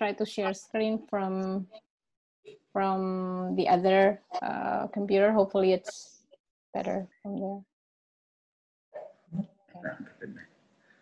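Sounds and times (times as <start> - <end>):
person speaking over video call: 0.0 - 1.8, 2.5 - 6.2, 6.8 - 7.6, 9.0 - 10.5.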